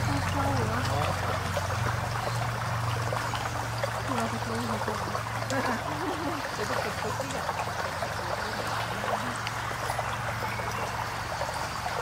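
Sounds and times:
stream trickling over stones: 0:00.0 - 0:12.0.

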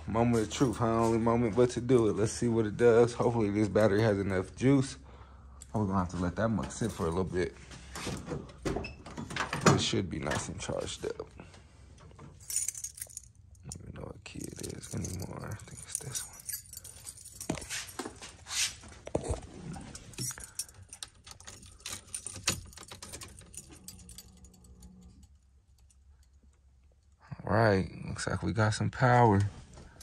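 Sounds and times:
car keys jangling: 0:03.2 - 0:05.8, 0:06.4 - 0:08.1, 0:12.0 - 0:27.1.

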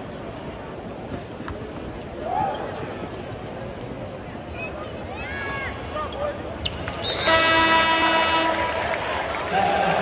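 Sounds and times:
arena horn blast: 0:07.2 - 0:08.8
crowd murmur: 0:08.0 - 0:10.0.

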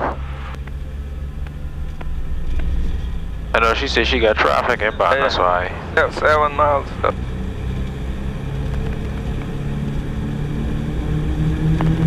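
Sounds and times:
piston aircraft engines droning: 0:00.0 - 0:12.0.

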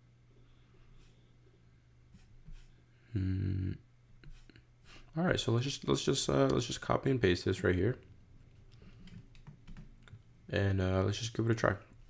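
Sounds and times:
low room hum: 0:00.0 - 0:12.0
computer keyboard clicks: 0:09.0 - 0:10.2.

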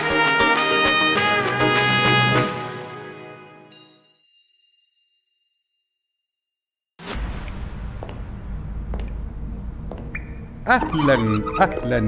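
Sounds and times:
cartoon theme music chord: 0:00.0 - 0:03.7.

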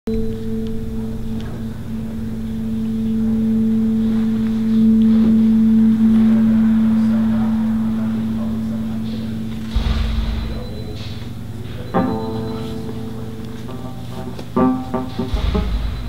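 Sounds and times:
low steady drone: 0:00.1 - 0:16.0
low thump: 0:01.4 - 0:11.5, 0:15.2 - 0:16.0.

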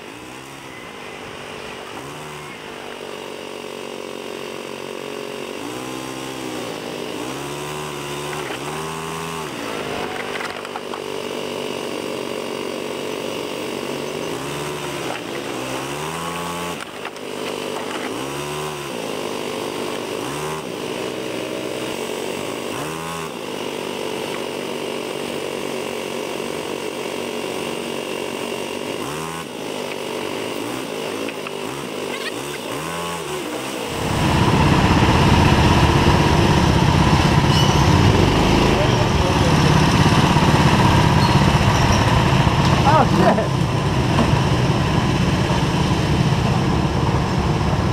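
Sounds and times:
go-kart engine revving: 0:00.0 - 0:47.9
loud rough steady noise: 0:00.0 - 0:47.9.

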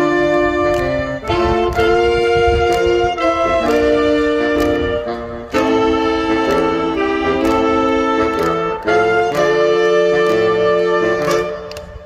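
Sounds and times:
saxophone ensemble chords: 0:00.0 - 0:12.0.

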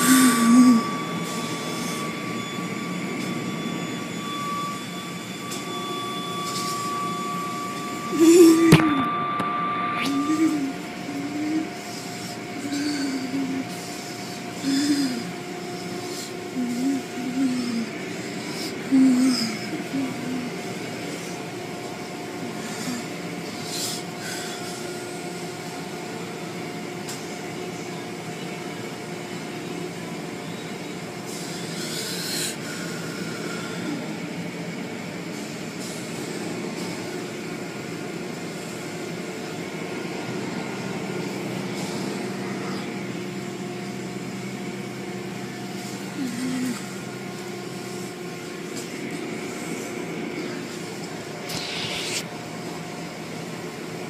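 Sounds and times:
steady mechanical hum: 0:00.0 - 0:54.0.

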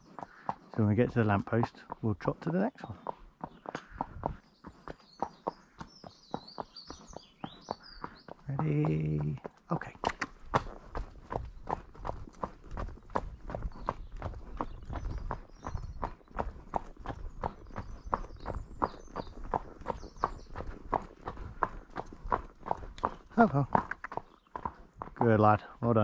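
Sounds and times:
horse hooves trotting on tarmac: 0:00.0 - 0:26.0.

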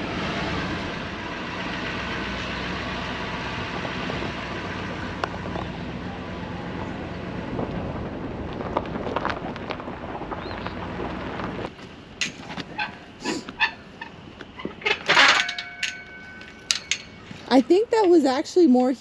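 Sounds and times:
vehicle engine running: 0:00.0 - 0:14.7
sharp knocks and rattles: 0:12.2 - 0:17.5.

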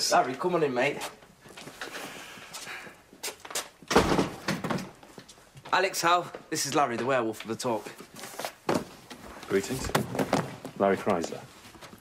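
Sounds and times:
footsteps and movement: 0:00.0 - 0:12.0
door shutting with heavy thud: 0:03.9 - 0:04.9.

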